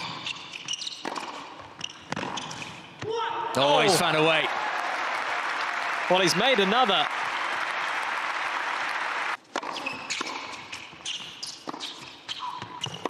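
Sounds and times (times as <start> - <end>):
tennis ball bounced and struck: 0.0 - 3.1, 9.5 - 13.0
quiet arena noise: 2.8 - 13.0
crowd applauding: 3.7 - 9.4.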